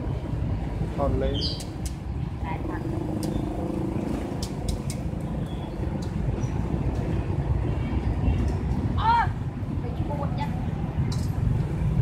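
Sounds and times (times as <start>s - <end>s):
low rumble of street traffic: 0.0s - 12.0s.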